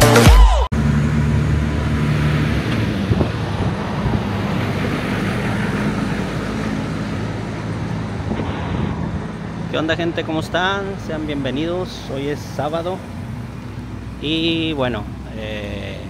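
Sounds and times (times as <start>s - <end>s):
generator engine droning: 0.0s - 16.0s.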